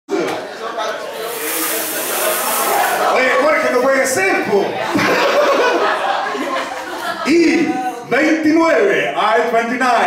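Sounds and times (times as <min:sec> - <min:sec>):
people talking indistinctly: 0:00.1 - 0:10.0
steady high hiss: 0:01.1 - 0:03.8.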